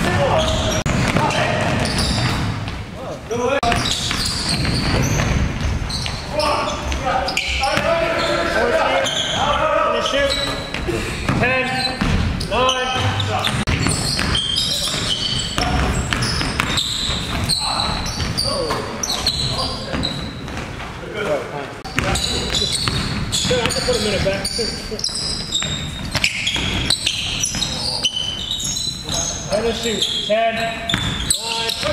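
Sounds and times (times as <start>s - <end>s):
basketball dribbling on wooden floor: 13.0s - 17.4s, 22.8s - 24.4s.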